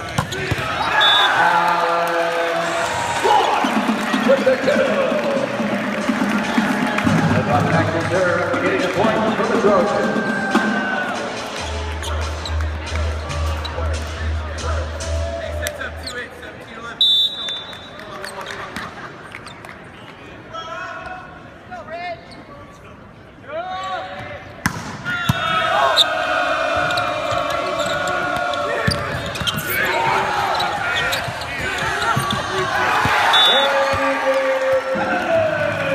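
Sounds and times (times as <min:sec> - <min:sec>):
players and crowd shouting: 0:00.0 - 0:08.0, 0:08.7 - 0:12.2, 0:25.0 - 0:35.9
referee's whistle blast: 0:00.9 - 0:01.4, 0:17.0 - 0:18.0, 0:33.2 - 0:34.0
ball struck with sharp smacks: 0:24.6 - 0:25.0.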